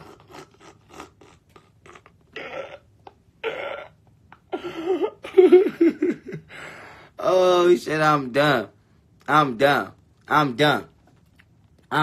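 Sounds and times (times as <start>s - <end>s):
man's stifled breathy laughter: 4.4s - 6.9s.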